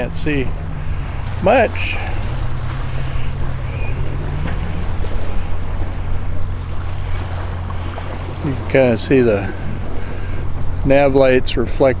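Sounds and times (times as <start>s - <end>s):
wind and water wash: 0.0s - 12.0s.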